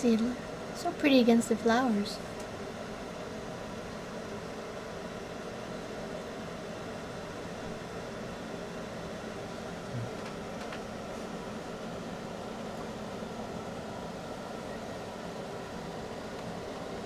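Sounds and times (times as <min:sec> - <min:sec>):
low background hum and hiss: 0:00.0 - 0:17.0.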